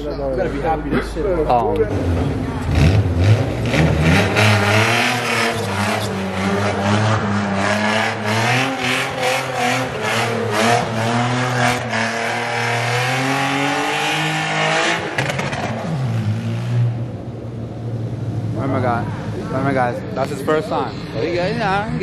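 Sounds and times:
car engine revving: 1.8s - 22.0s.

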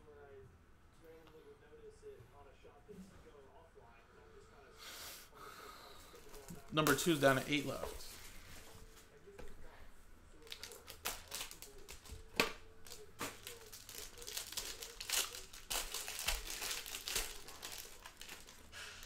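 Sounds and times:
plastic packaging crinkling: 10.4s - 19.0s.

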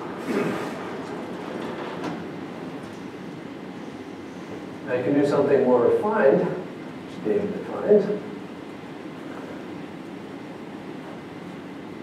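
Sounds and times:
sliding panels rolling rumble: 0.0s - 3.4s.

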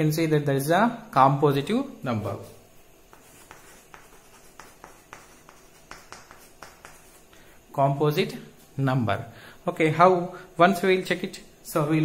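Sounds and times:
chalk scratching on chalkboard: 2.2s - 7.3s.

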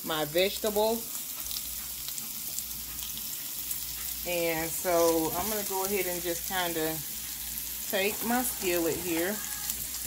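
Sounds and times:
meat sizzling in a skillet: 0.0s - 10.0s.

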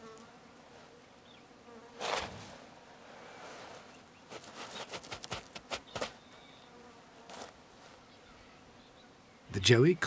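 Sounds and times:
faint insect buzzing: 0.0s - 10.0s
paws scratching dry soil: 3.4s - 6.6s.

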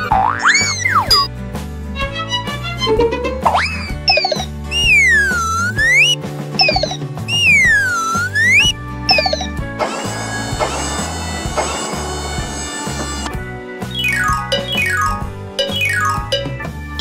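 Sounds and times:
upbeat cartoon music: 0.0s - 17.0s
swooping tones: 3.4s - 9.4s
slide-whistle rise: 3.6s - 9.4s
short falling whistles: 3.8s - 9.4s.

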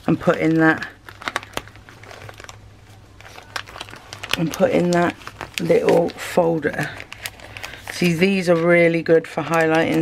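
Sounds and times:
plastic sleeves crinkling: 0.0s - 10.0s.

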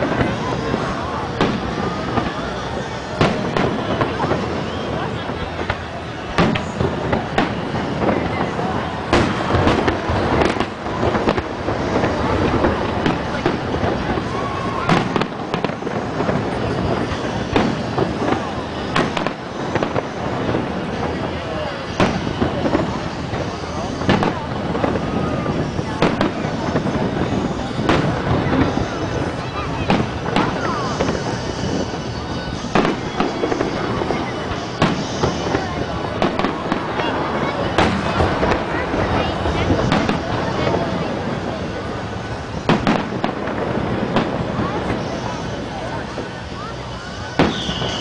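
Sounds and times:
crowd voices: 0.0s - 48.0s
firework shells bursting: 0.0s - 48.0s.

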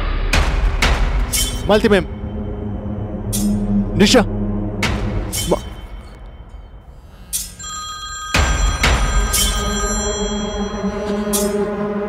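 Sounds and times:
loud low boom: 0.0s - 6.9s
mobile phone ringtone: 7.5s - 11.8s.

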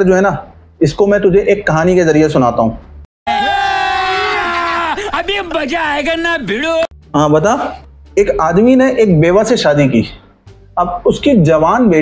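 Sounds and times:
man yelling: 3.3s - 6.9s
voices shouting: 3.3s - 6.9s.

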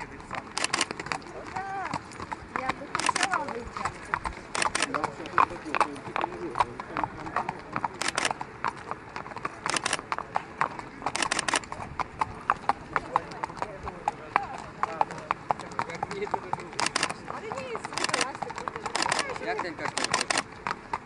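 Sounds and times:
hooves clip-clopping on pavement: 0.0s - 21.0s
voices murmuring: 0.0s - 21.0s
sharp clicks: 0.5s - 1.2s, 4.5s - 5.0s, 8.0s - 8.4s, 9.7s - 10.0s, 11.1s - 11.7s, 16.8s - 17.2s, 17.9s - 20.5s.

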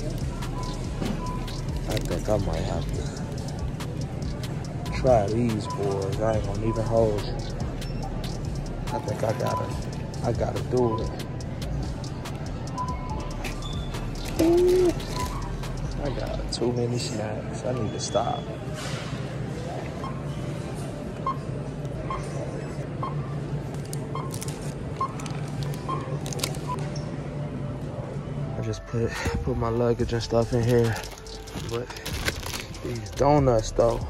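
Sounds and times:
faint background music: 0.0s - 34.0s
barcode scanner beeps: 24.1s - 26.9s
plastic rustling: 30.2s - 33.3s.

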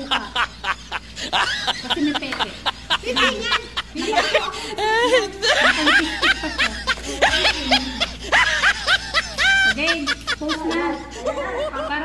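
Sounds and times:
women laughing and giggling: 0.0s - 12.0s.

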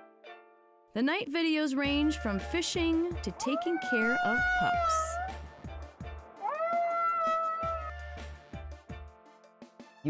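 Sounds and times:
young wolf howling: 1.9s - 5.5s, 6.4s - 8.2s
background music with a beat: 5.3s - 10.0s.

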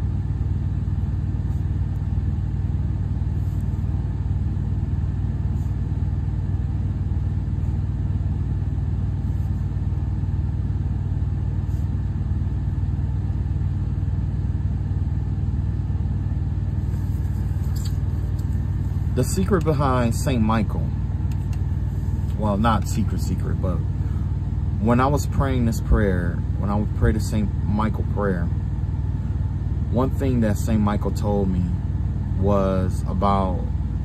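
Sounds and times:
low engine-like rumble: 0.0s - 34.0s.

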